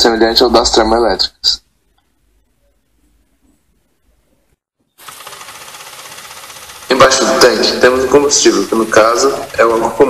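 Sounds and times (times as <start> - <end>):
model steam engine clatter: 5.0 - 10.0.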